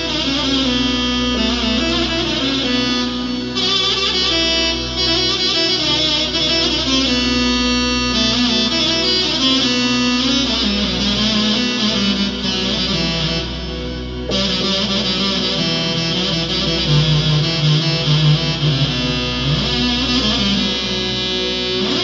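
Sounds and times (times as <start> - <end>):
low bass drone: 0.0 - 22.0
wavering keyboard lead melody: 0.0 - 22.0.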